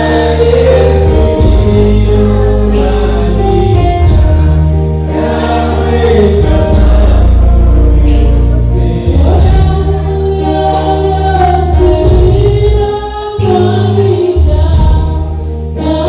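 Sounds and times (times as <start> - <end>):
electronic keyboard accompaniment: 0.0 - 16.0
group singing gospel song: 0.0 - 16.0.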